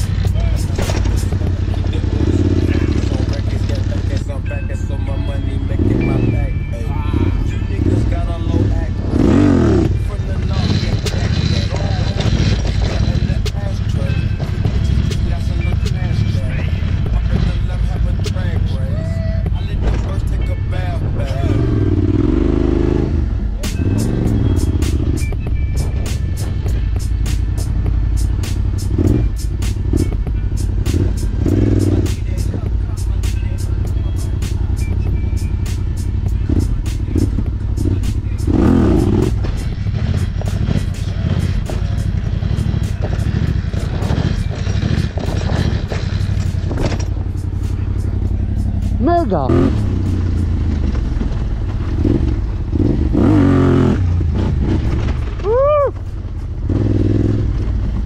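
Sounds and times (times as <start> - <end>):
background music with steady beat: 0.0 - 58.0
quad engine running: 0.0 - 58.0.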